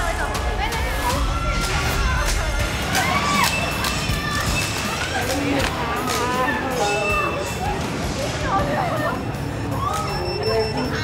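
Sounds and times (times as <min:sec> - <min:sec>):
players shouting and squealing: 0:00.3 - 0:11.0.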